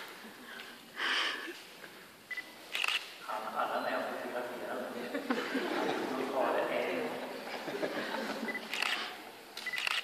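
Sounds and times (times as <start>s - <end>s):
camera shutter clicking: 2.7s - 3.1s, 8.6s - 10.0s.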